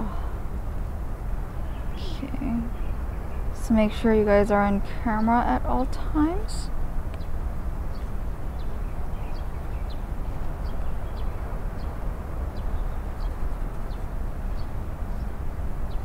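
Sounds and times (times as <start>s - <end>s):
distant traffic rumble: 0.0s - 16.0s.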